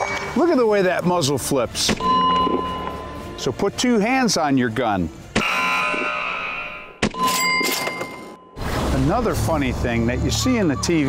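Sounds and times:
sharp hit with ringing ding: 0:02.0 - 0:03.2, 0:05.4 - 0:08.6
buzzer wrong tone: 0:05.4 - 0:07.3.

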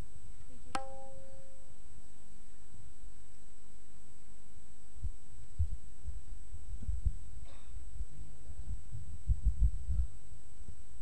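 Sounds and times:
steady electrical hum: 0:00.0 - 0:11.0.

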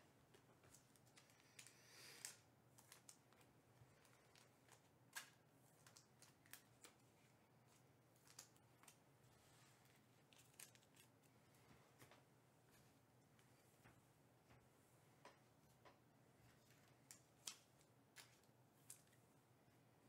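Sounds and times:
faint clicks of cards: 0:00.3 - 0:07.0
wrapper rustle: 0:09.7 - 0:11.3.

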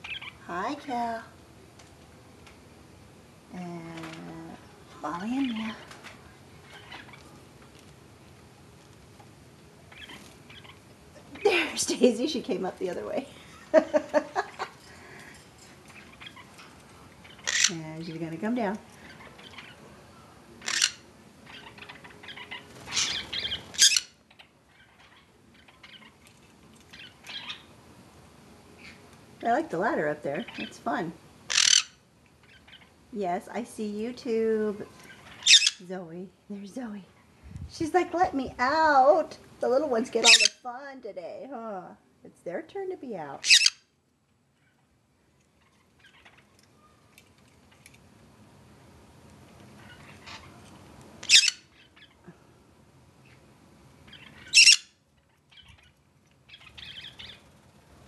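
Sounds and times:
parakeets chirping: 0:00.0 - 0:01.2, 0:04.0 - 0:07.4, 0:09.8 - 0:13.6, 0:14.4 - 0:27.8, 0:30.3 - 0:33.0, 0:34.8 - 0:35.9, 0:40.0 - 0:40.6, 0:43.4 - 0:43.9, 0:44.5 - 0:47.1, 0:49.6 - 0:52.2, 0:53.2 - 0:57.6.

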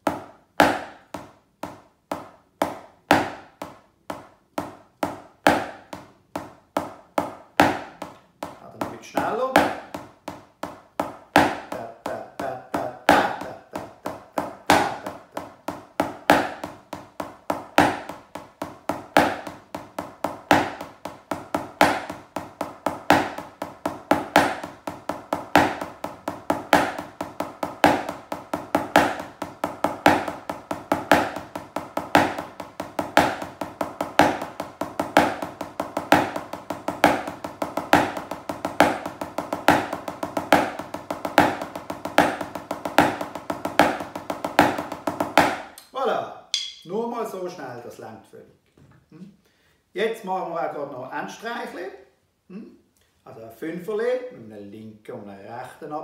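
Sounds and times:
drumsticks on rubber practice pad: 0:00.0 - 0:12.2, 0:14.3 - 0:46.9.

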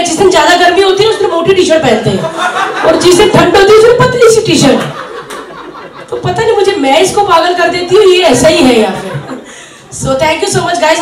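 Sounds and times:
people talking: 0:00.0 - 0:05.0, 0:06.1 - 0:09.3, 0:09.9 - 0:11.0
chuckling laughter: 0:04.9 - 0:06.2.

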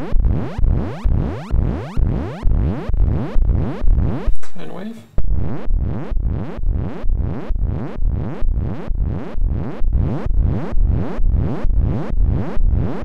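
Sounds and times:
synthesizer repeating note pattern: 0:00.0 - 0:04.4, 0:05.2 - 0:13.0.

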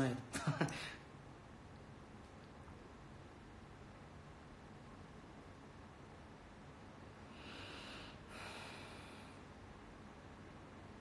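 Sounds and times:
person breathing through nose: 0:07.3 - 0:09.4.

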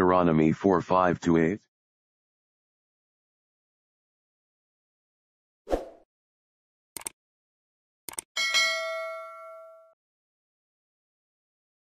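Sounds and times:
notification bell ding: 0:08.4 - 0:10.0.

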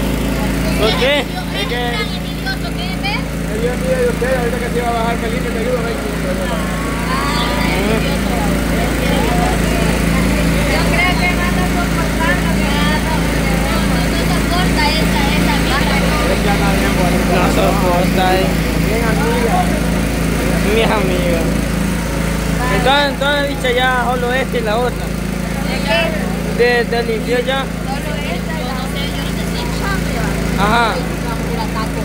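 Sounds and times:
small engine droning: 0:00.0 - 0:32.0
people talking: 0:00.3 - 0:21.7, 0:22.6 - 0:32.0.

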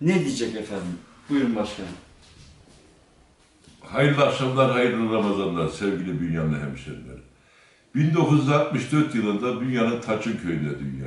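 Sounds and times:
man speaking: 0:00.0 - 0:02.1, 0:03.8 - 0:07.3, 0:07.9 - 0:11.0.

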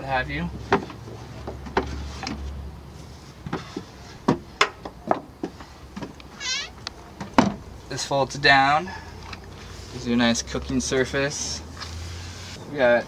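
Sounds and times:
wooden knocks and clacks: 0:03.4 - 0:06.2
high squeak: 0:06.4 - 0:06.8.

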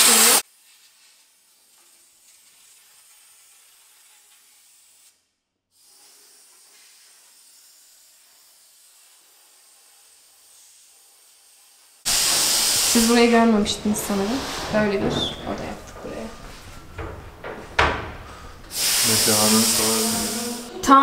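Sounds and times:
steam cleaner hissing: 0:00.0 - 0:05.0, 0:05.8 - 0:21.0.

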